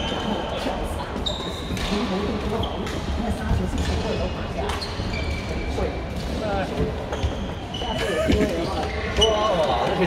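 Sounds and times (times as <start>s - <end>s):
players talking: 0.0s - 10.0s
sneakers squeaking on wooden court: 1.1s - 3.1s, 3.8s - 6.0s, 6.8s - 10.0s.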